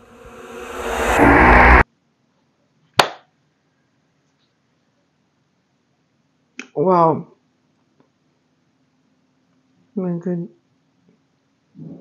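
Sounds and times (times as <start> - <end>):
rushing swell sound effect: 0.0 - 1.8.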